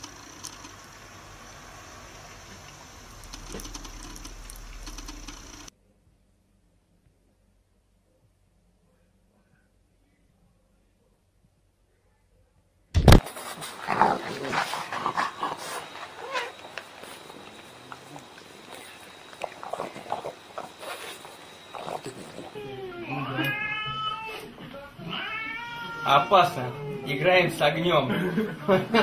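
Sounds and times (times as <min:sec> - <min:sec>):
cat yowling: 0:15.6 - 0:16.7, 0:22.4 - 0:27.3.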